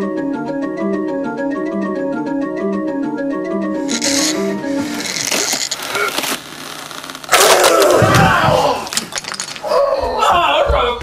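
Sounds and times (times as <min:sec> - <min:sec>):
organ music: 0:00.0 - 0:05.1.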